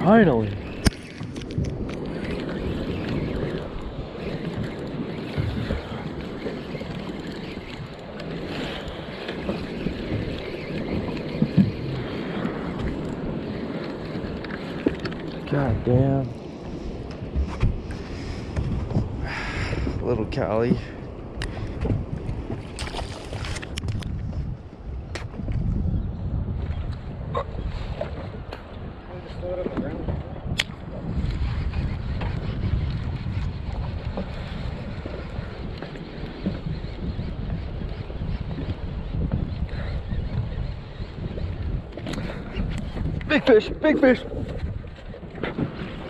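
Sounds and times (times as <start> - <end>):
water lapping against boat: 0.0 - 25.6, 26.9 - 46.0
wind rumbling on microphone: 0.0 - 46.0.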